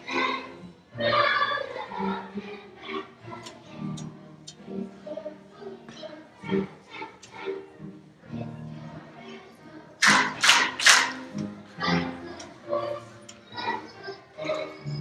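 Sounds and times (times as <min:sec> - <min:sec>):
children's choir singing: 0:00.0 - 0:15.0
loud claps: 0:10.0 - 0:11.4.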